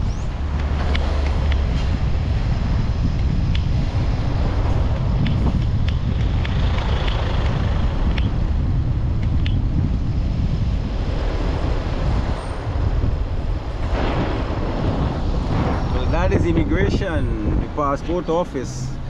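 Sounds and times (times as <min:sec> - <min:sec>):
car road and engine rumble: 0:00.0 - 0:19.0
wind buffeting microphone: 0:00.0 - 0:19.0.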